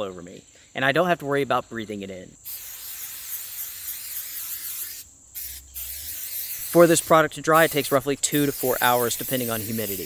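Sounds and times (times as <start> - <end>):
aerosol spray hissing: 2.4 - 10.0.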